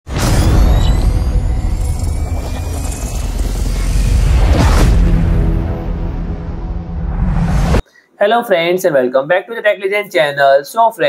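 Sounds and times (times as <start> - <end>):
deep low rumble: 0.4 - 7.8
faint rising tone: 0.6 - 7.8.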